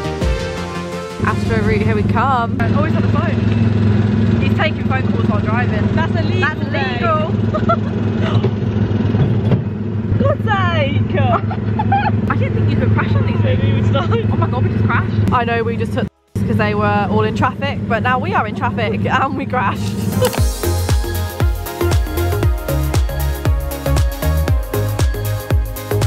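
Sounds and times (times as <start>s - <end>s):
small engine running: 1.3s - 15.2s
voices laughing and squealing: 6.4s - 8.6s, 10.2s - 14.8s.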